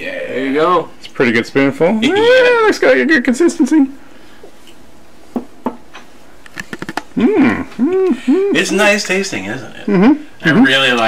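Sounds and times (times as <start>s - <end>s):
mouth and lip smacks: 6.4s - 7.2s.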